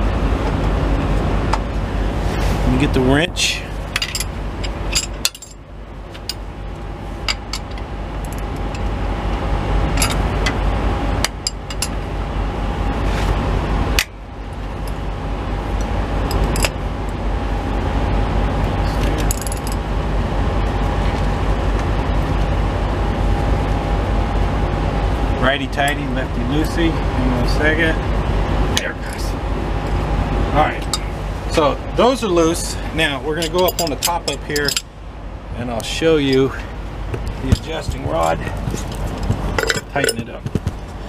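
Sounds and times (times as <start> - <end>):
low vehicle idling hum: 0.0 - 41.0
wrench clinking on metal bolts: 33.4 - 34.9.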